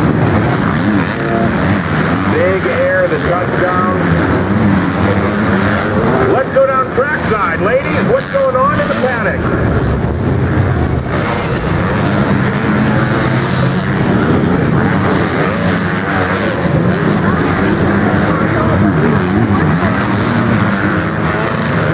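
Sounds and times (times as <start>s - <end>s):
motocross engines revving: 0.0s - 21.9s.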